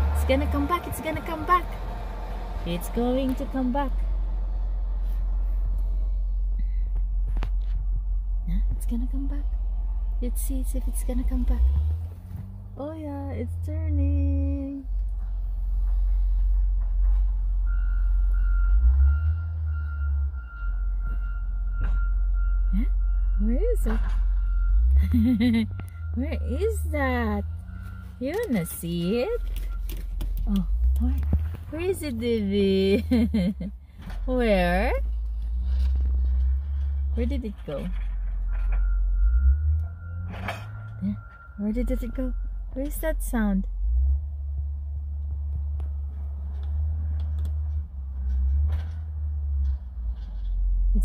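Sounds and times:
car engine rumble: 0.0s - 51.0s.

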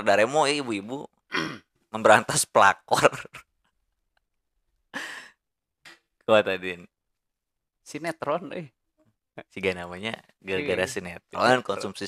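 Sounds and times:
man sighing: 5.0s - 5.3s.

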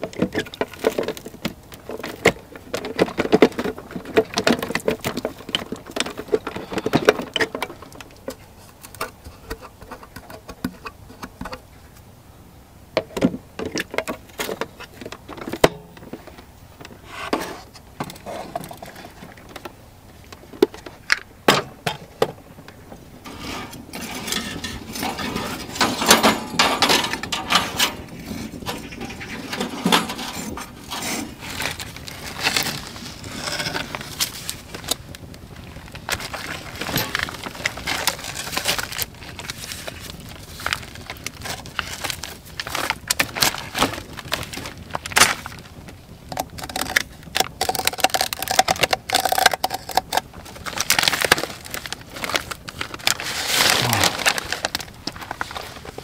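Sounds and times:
plastic wrapping crinkling: 28.0s - 56.0s.

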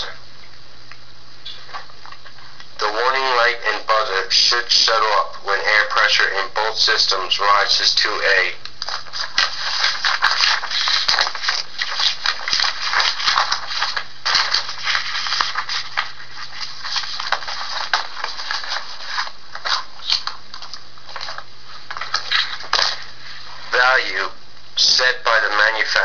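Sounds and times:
faint low hum: 0.0s - 26.0s
rustling and crinkling: 8.8s - 23.8s.

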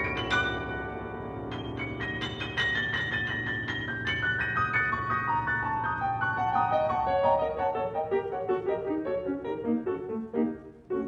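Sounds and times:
grand piano descending run: 0.0s - 11.0s.

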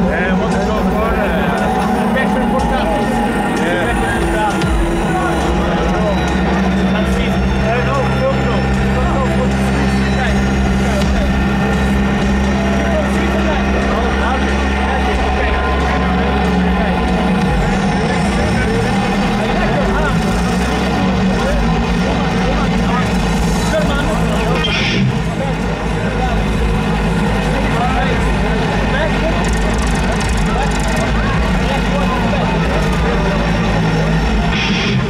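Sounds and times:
crowd chattering: 0.0s - 35.0s
sound system low hum: 0.0s - 35.0s.

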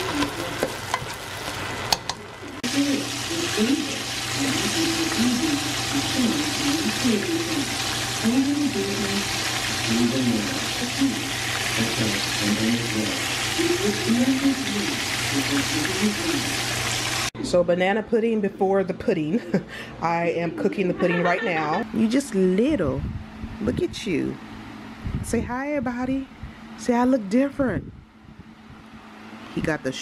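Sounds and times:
chicken sizzling in hot oil: 0.0s - 17.3s.

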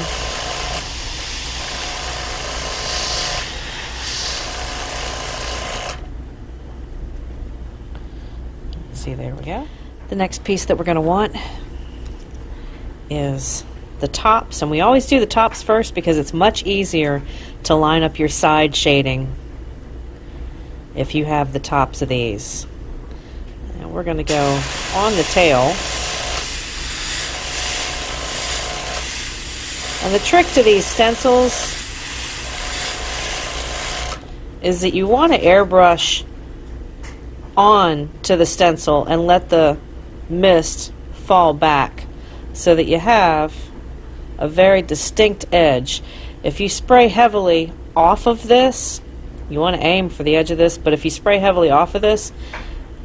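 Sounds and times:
low steady hum: 0.0s - 53.0s
airbrush spray hissing: 2.6s - 4.6s, 24.3s - 33.9s.

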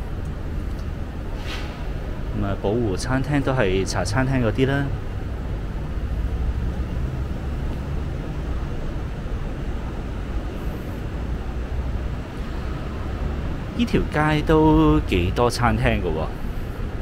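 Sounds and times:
city street rumble: 0.0s - 17.0s.

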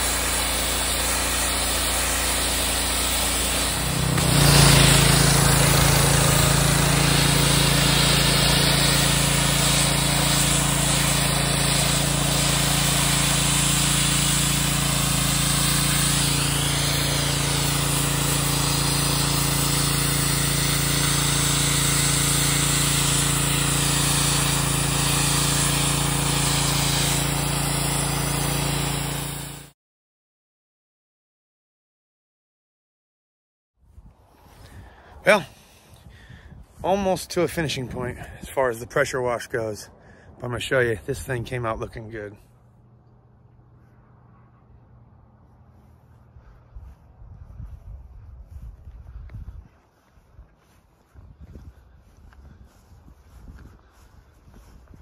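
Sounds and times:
pressure washer engine running: 0.0s - 29.8s, 45.4s - 47.6s, 49.9s - 55.0s
water spraying against wall: 0.0s - 29.8s.

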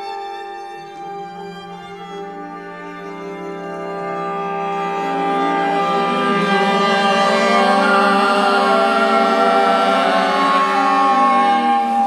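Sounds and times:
ensemble of instruments and voices: 0.0s - 12.0s.

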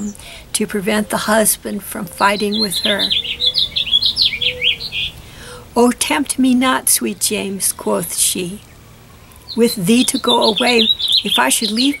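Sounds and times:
songbird chirping: 0.0s - 12.0s.

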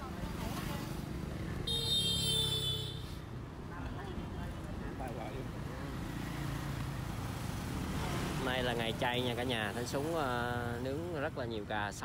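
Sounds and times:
motorbikes and cars passing: 0.0s - 12.0s.

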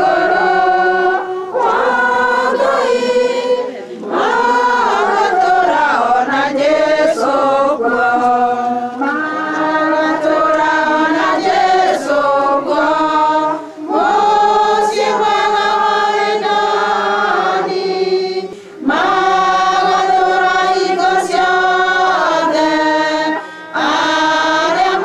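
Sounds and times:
girls singing a hymn: 0.0s - 25.0s.

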